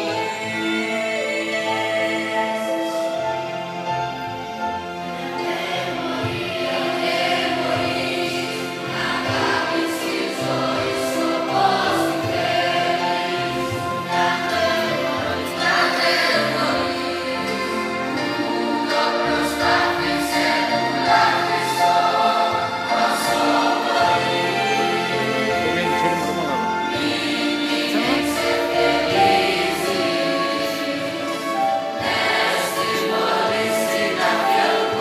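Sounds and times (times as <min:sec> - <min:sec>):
youth choir singing: 0:00.0 - 0:04.5, 0:05.1 - 0:35.0.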